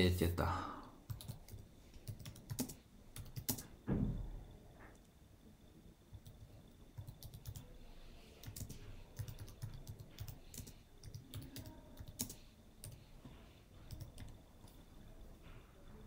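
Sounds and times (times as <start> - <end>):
computer keyboard typing: 1.0 - 3.7, 6.1 - 7.7, 8.4 - 13.1, 13.8 - 14.8.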